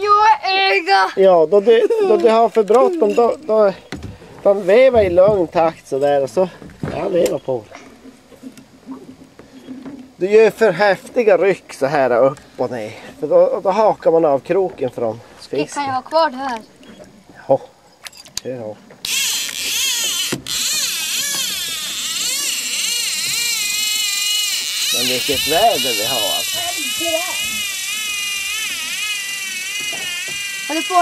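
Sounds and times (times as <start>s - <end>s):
reel clicks: 18.0s - 31.0s
fishing reel whirring: 19.0s - 31.0s.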